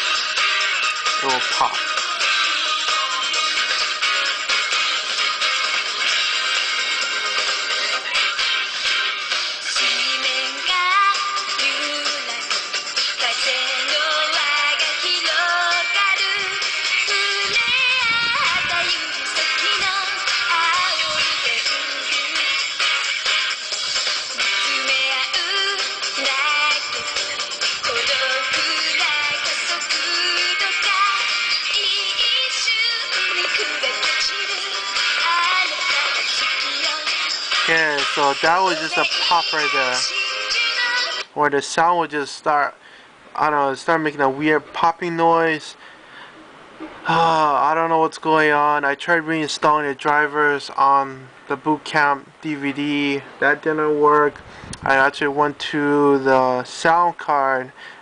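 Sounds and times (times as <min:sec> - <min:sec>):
pop song through laptop speakers: 0:00.0 - 0:41.4.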